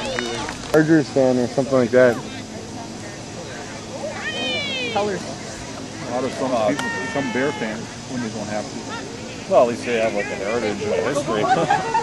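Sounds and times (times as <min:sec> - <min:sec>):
child shouting: 0:04.1 - 0:05.2, 0:06.2 - 0:07.8.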